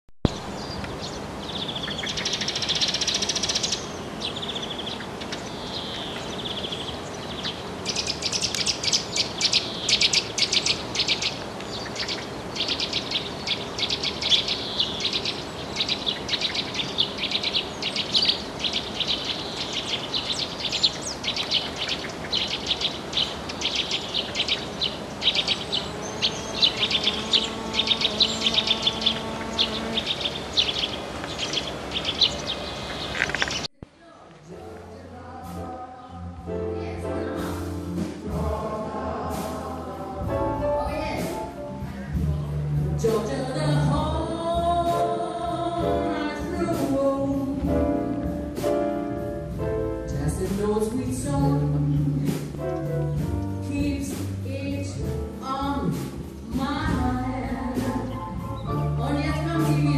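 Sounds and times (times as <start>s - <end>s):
songbirds chirping and singing: 0.3s - 33.7s, 34.4s - 48.8s, 50.1s - 59.9s.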